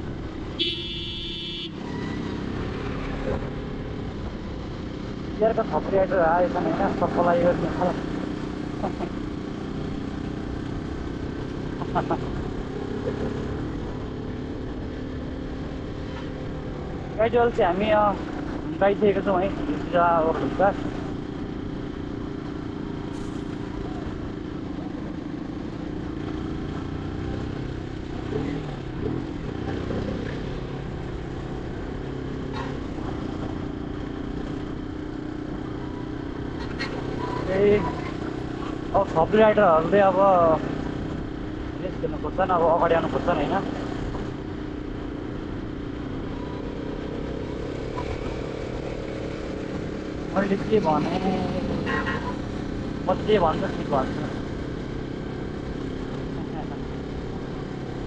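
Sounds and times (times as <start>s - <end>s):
motorcycle engine running: 0.0s - 58.0s
road and wind noise: 0.0s - 58.0s.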